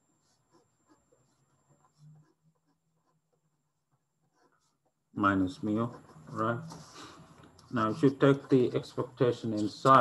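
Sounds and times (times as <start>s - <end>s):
pen scratching on paper: 0.1s - 10.0s.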